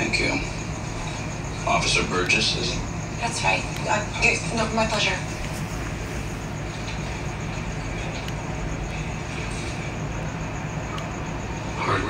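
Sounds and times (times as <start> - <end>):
constant low hum: 0.0 - 12.0
steady hiss: 0.0 - 12.0.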